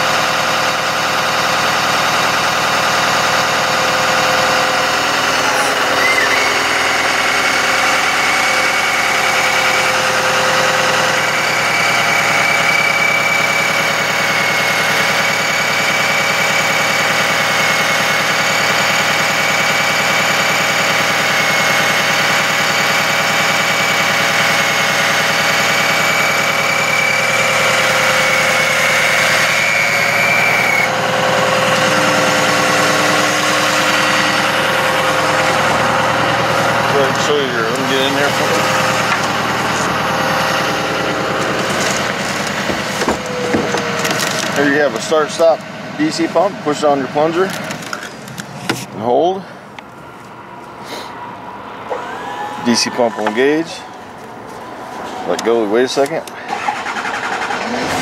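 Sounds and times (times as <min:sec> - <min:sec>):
hydraulic hoist whine: 0:00.0 - 0:58.0
truck engine running: 0:00.0 - 0:58.0.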